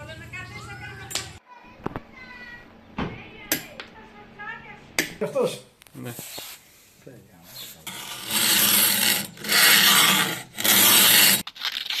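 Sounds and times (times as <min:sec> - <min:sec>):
file rasping on knife blade: 0:07.8 - 0:11.4.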